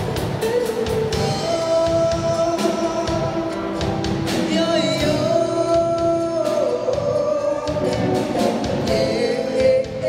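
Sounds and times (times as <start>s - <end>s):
drum kit: 0.0s - 10.0s.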